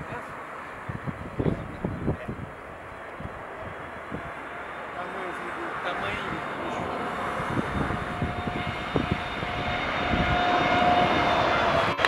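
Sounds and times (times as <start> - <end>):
jet engines rushing: 0.0 - 12.0.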